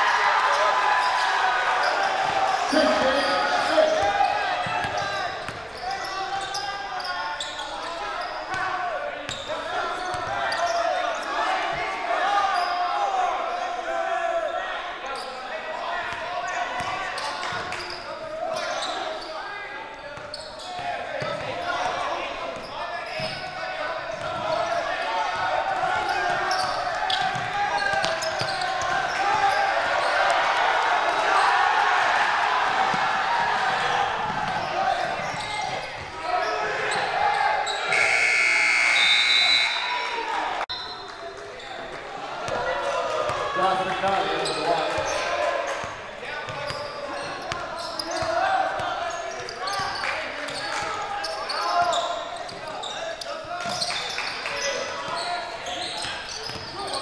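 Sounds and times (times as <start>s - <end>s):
echoing crowd voices: 0.0s - 57.0s
shrill whistle blast: 37.8s - 40.0s.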